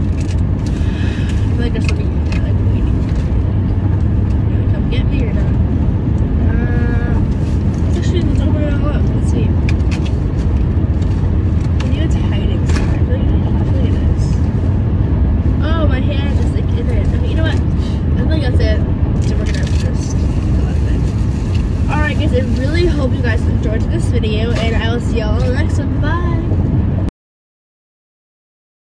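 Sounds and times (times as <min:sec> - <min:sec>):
road and engine rumble in car: 0:00.0 - 0:27.1.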